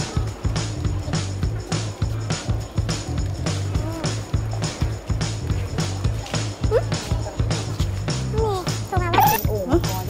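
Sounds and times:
music with quick beat: 0.0 - 10.0.

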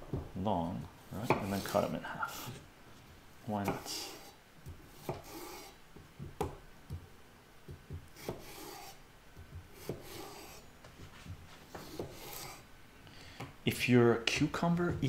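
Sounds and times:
knife slicing cucumber: 1.2 - 2.6, 3.6 - 5.8, 7.7 - 10.6, 11.7 - 12.6.

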